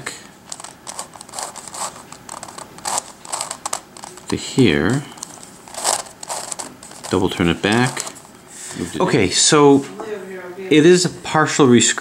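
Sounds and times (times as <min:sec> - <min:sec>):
plastic puzzle clicking and scraping: 0:00.5 - 0:08.2.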